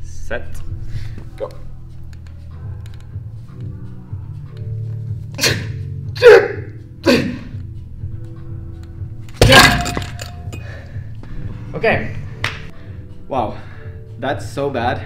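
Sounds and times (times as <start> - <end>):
background music: 0.0 - 15.0
weight plates dropped clanking: 9.4 - 10.7.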